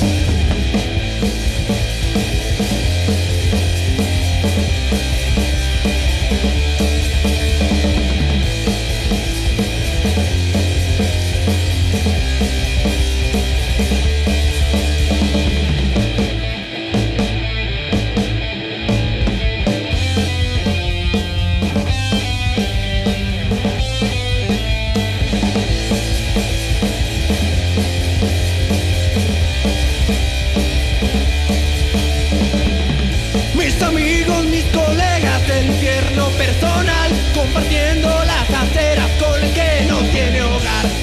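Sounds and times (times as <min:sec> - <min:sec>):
bass guitar: 0:00.0 - 0:41.0
drum kit: 0:00.0 - 0:41.0
electric guitar: 0:00.0 - 0:41.0.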